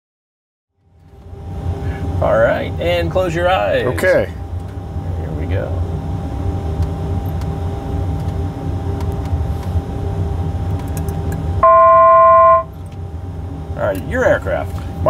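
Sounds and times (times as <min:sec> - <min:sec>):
aircraft engine rumble: 0:00.8 - 0:15.0
loud electronic tone: 0:11.6 - 0:12.8.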